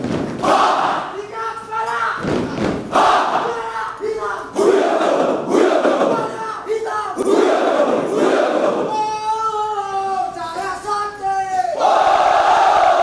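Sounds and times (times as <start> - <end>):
group shouting a chant: 0.4 - 1.3, 2.9 - 9.0, 11.8 - 13.0.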